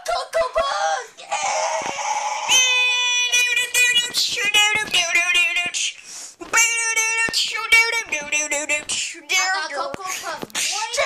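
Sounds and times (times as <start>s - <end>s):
boy yelling and screaming: 0.6s - 5.9s.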